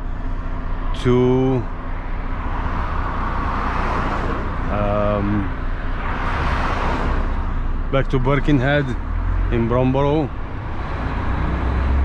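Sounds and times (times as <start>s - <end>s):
engine rumble inside truck cab: 0.0s - 12.0s
road rushing noise: 0.0s - 12.0s.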